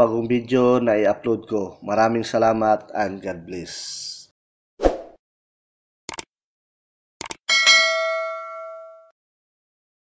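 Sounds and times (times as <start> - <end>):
quick clicks: 6.1 - 6.3, 7.2 - 7.4
notification bell ding: 7.5 - 9.2.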